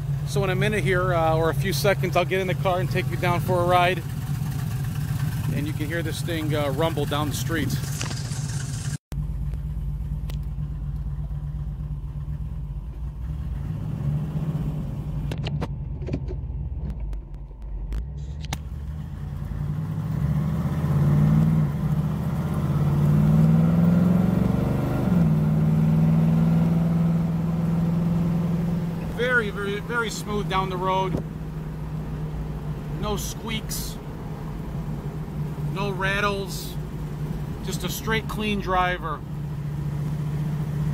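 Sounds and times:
car engine rumbling and revving: 0.0s - 40.9s.

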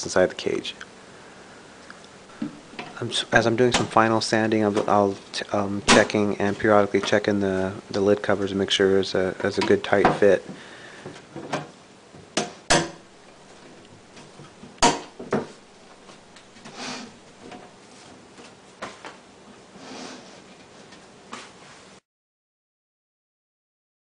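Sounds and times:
acrylic panels clicking and knocking: 11.4s - 13.1s, 14.2s - 15.6s.

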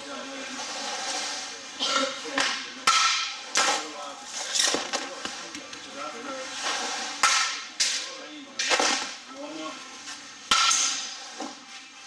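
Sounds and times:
bat striking ball: 2.4s - 3.7s, 7.2s - 8.0s, 10.5s - 11.1s.

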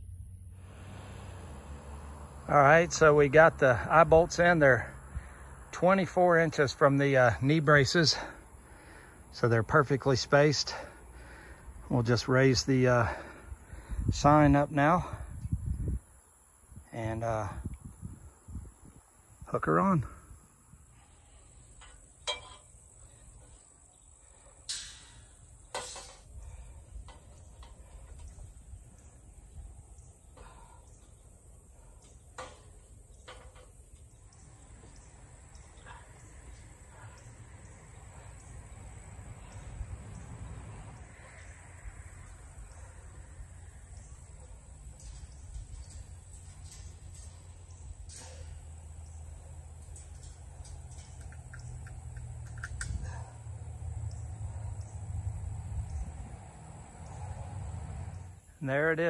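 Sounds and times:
metal clicks and knocks: 49.7s - 53.0s.

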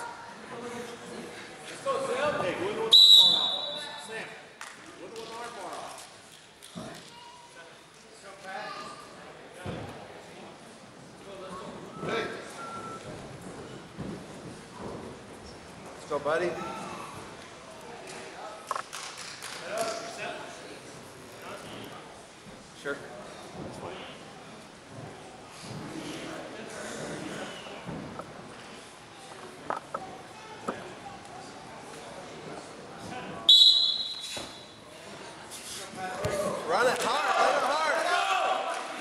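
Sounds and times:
referee's whistle blast: 2.9s - 3.9s, 33.5s - 34.6s.

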